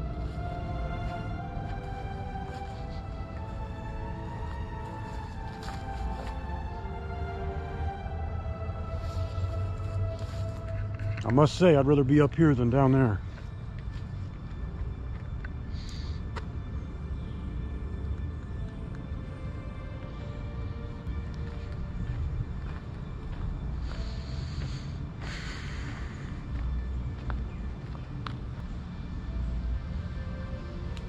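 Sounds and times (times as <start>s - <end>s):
slow held music tones: 0.0s - 31.0s
steady low rumble: 0.0s - 31.0s.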